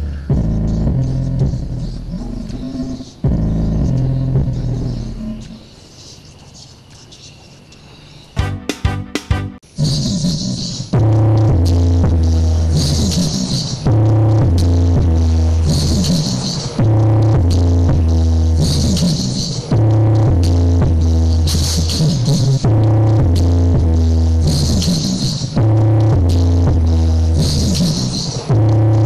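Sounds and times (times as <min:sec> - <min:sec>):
bass-heavy electronic dance music: 0:00.0 - 0:05.6, 0:08.4 - 0:09.6, 0:11.0 - 0:29.0.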